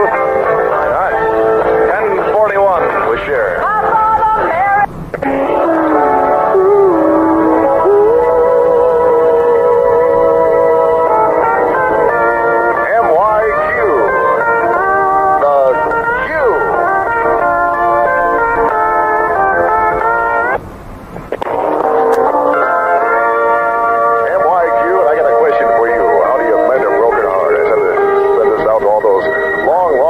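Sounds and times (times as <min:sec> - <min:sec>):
guitar music on car radio: 0:00.0 - 0:30.0.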